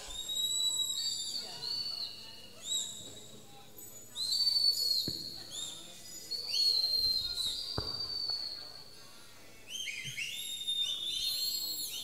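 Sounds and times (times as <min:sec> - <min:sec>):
high-pitched whistle: 0:00.0 - 0:12.0.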